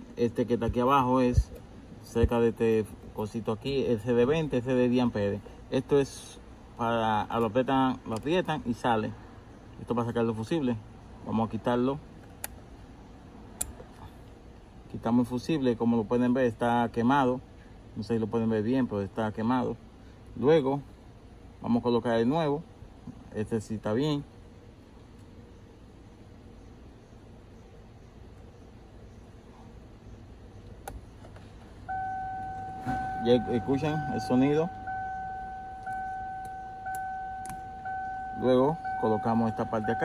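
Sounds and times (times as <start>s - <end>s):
car warning chime beeping: 31.9s - 40.0s.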